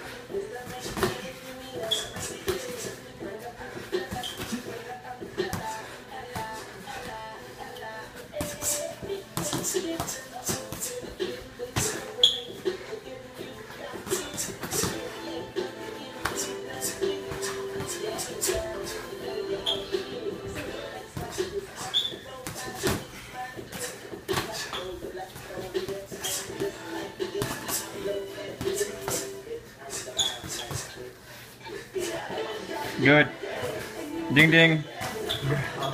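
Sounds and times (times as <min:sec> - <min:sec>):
background music: 0:00.0 - 0:35.9
boxing glove punches: 0:08.4 - 0:12.2.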